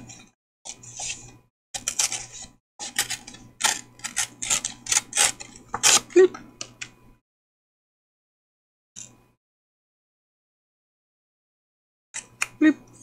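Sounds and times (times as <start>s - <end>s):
paper and card rustling: 0.0s - 6.1s.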